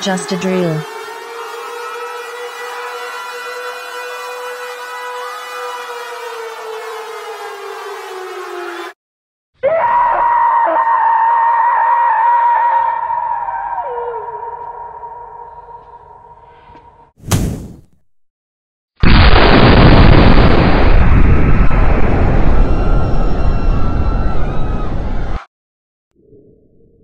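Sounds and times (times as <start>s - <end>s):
loud wailing siren tone: 0.0s - 9.0s, 9.7s - 17.0s, 19.1s - 25.5s.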